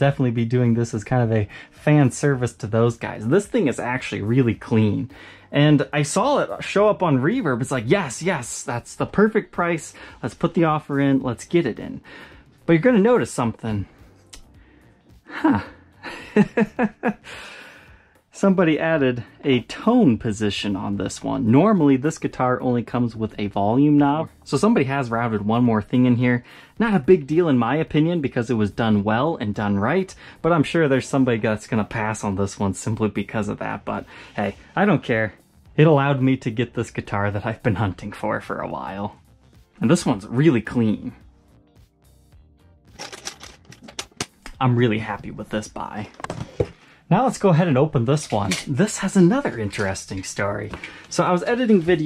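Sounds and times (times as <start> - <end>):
faint background music: 0.0 - 52.0
man chuckling: 15.3 - 17.5.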